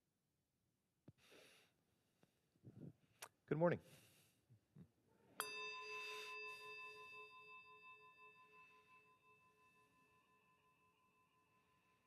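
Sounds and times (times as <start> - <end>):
small metal bell ringing: 5.4 - 12.0.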